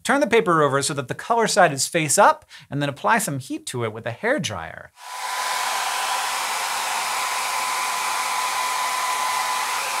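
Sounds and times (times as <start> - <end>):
hair dryer running: 5.0 - 10.0.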